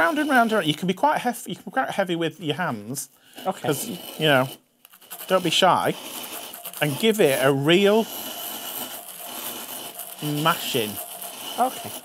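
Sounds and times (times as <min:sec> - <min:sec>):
chalk grinding in salt on paper: 0:00.0 - 0:01.0, 0:02.0 - 0:12.0.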